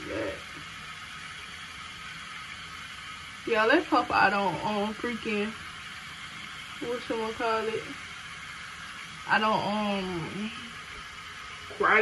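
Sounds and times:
water tap running: 0:00.0 - 0:12.0.

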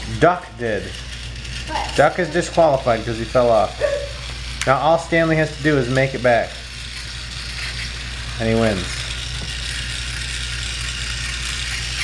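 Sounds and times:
toy train running on track: 0:00.0 - 0:12.0.

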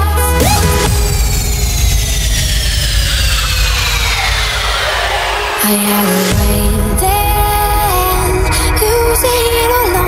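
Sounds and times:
synthesised falling sweep: 0:00.0 - 0:08.2
steady low bass: 0:00.0 - 0:10.0
rushing noise: 0:00.4 - 0:08.2.

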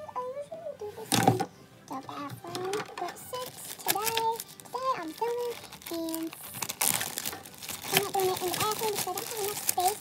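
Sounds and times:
crinkling handling noise: 0:01.0 - 0:10.0
child's voice held note: 0:07.9 - 0:10.0.

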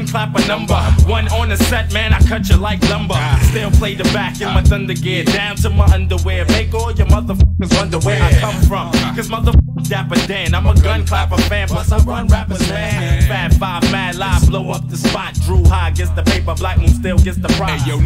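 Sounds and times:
deep bassline: 0:00.0 - 0:18.0
rapping over a beat: 0:00.0 - 0:18.0.

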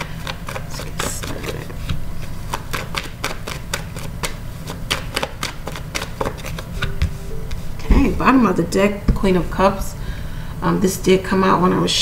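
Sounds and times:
cards being shuffled: 0:00.3 - 0:07.0.

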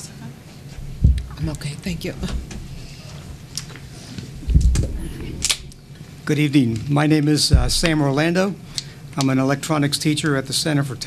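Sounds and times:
meeting room noise: 0:00.0 - 0:11.0
man speaking: 0:06.2 - 0:08.6.

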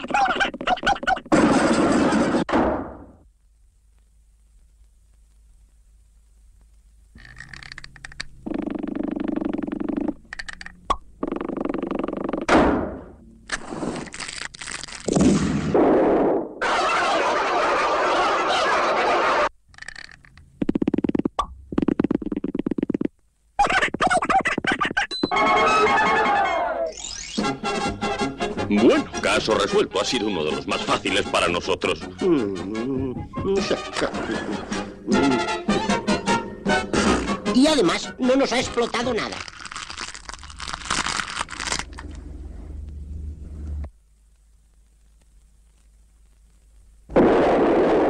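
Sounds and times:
cartoon sound effects: 0:23.6 - 0:27.4
cartoon music cues: 0:25.2 - 0:27.6, 0:30.1 - 0:37.6.

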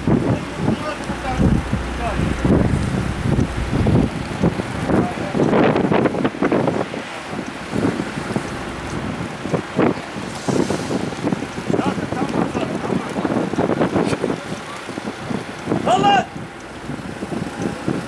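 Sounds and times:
wind buffeting microphone: 0:00.0 - 0:18.0
indistinct voices: 0:00.3 - 0:05.4.

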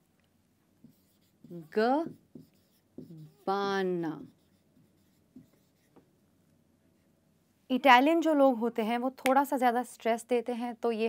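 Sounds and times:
marker writing on whiteboard: 0:00.8 - 0:06.1.

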